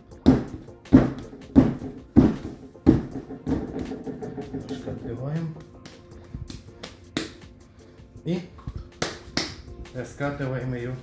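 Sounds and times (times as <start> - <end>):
dough slapping against palms: 0.0 - 7.8, 8.6 - 10.1
hands kneading dough: 0.0 - 11.0.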